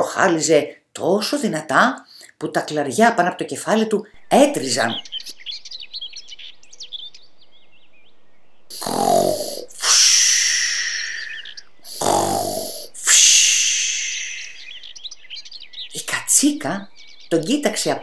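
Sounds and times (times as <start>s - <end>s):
birds chirping: 4.0s - 18.0s
cartoon snoring: 8.7s - 13.2s.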